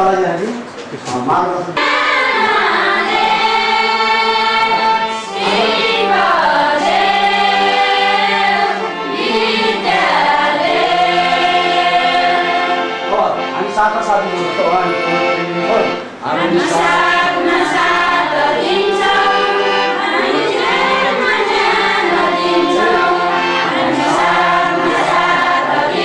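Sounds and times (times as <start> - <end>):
women singing together: 1.8 - 13.1, 16.3 - 26.0.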